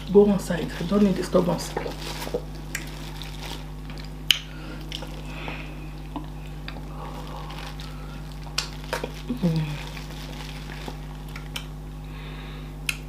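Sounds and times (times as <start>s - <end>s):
steady low hum: 0.0s - 13.0s
wet eating clicks and smacks: 1.7s - 6.9s, 7.7s - 11.8s.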